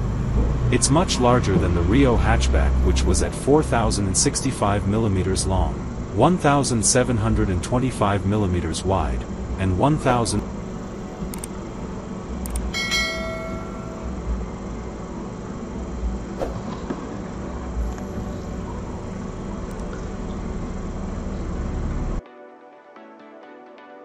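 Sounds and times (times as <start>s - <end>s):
low rumble and hiss: 0.0s - 22.2s
bell-like ding: 12.7s - 14.2s.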